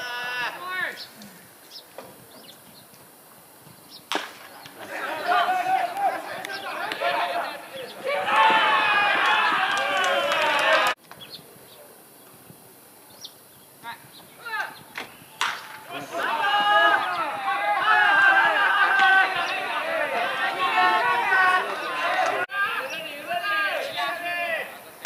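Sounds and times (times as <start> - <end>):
baseball bat crack: 4.1 - 4.9, 5.9 - 7.2, 15.0 - 16.6
ballplayers shouting: 4.5 - 11.0, 15.4 - 25.0.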